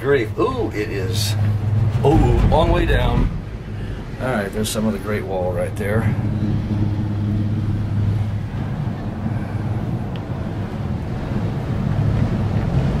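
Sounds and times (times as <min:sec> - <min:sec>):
steady low hum: 0:00.0 - 0:13.0
wind on microphone: 0:00.7 - 0:13.0.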